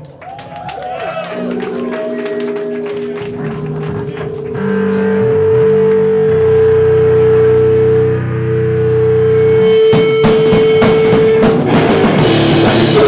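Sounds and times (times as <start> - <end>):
electric bass notes: 1.1 - 13.0
sustained feedback tone: 4.3 - 11.7.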